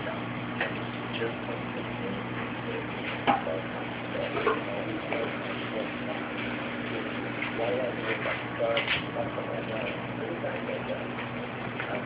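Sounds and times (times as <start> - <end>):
constant hiss: 0.0 - 12.0
faint voices: 0.0 - 12.0
steady low hum: 0.0 - 12.0.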